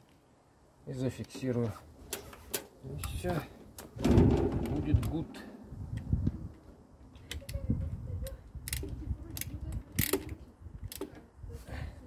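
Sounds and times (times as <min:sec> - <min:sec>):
wrench tightening nuts: 0:08.6 - 0:11.1.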